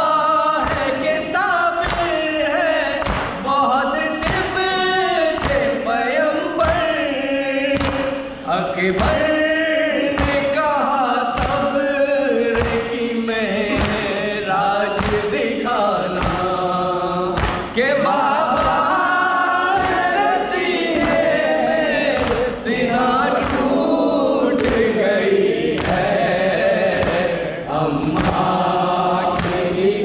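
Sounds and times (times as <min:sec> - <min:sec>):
men chanting in unison: 0:00.0 - 0:30.0
chest beating slaps: 0:01.8 - 0:02.2, 0:02.9 - 0:03.5, 0:04.1 - 0:05.8, 0:07.6 - 0:08.4, 0:10.1 - 0:10.6, 0:12.4 - 0:13.1, 0:13.7 - 0:15.4, 0:16.0 - 0:17.8, 0:18.4 - 0:30.0.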